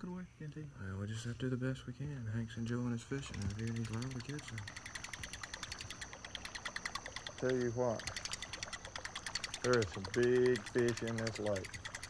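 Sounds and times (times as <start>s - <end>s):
night insects chirping: 0.0s - 12.0s
steady high insect trill: 0.0s - 12.0s.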